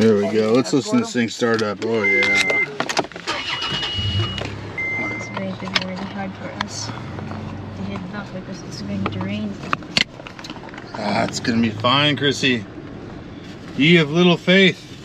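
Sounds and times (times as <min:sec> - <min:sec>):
car engine starting and running: 0:00.0 - 0:15.0
short beeps: 0:02.0 - 0:02.7, 0:03.3 - 0:05.7.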